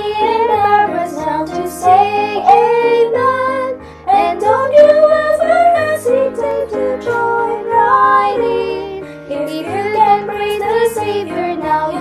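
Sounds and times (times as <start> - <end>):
instrumental accompaniment: 0.0 - 12.0
women singing hymn in harmony: 0.0 - 12.0.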